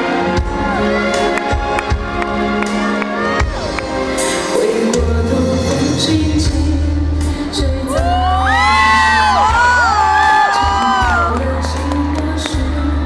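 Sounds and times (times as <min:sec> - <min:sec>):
audience cheering and whooping: 0:00.0 - 0:04.2, 0:07.9 - 0:13.0
piano and orchestra ballad: 0:00.0 - 0:13.0.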